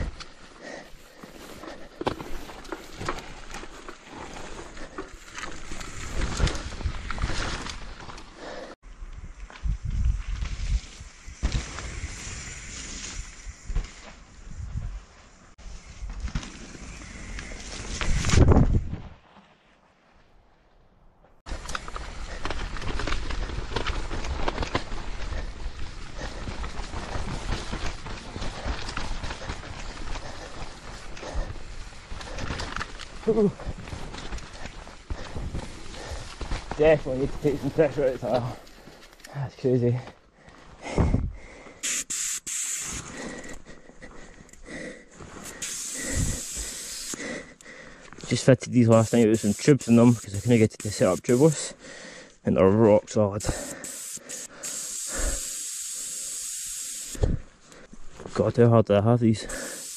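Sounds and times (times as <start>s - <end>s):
bike tyres over dirt: 0.0s - 20.2s, 21.4s - 40.0s, 40.6s - 58.5s.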